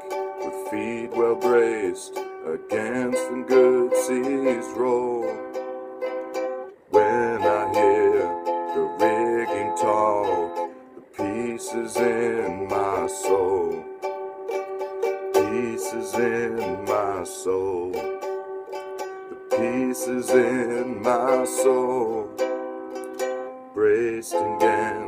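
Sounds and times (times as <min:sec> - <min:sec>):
man singing: 0:00.0 - 0:05.6, 0:06.9 - 0:14.0, 0:15.1 - 0:18.3, 0:19.3 - 0:22.5, 0:23.7 - 0:25.0
ukulele strumming chords: 0:00.0 - 0:25.0.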